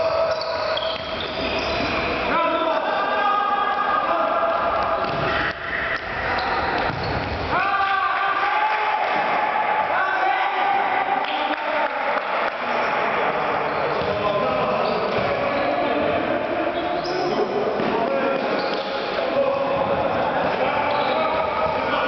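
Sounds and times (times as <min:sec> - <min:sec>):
players shouting: 0:00.0 - 0:22.0
ball kicked and bouncing: 0:06.8 - 0:07.4.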